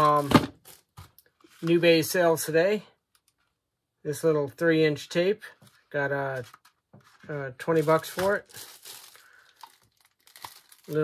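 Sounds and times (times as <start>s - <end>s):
plastic bag crinkling: 6.4s - 11.0s.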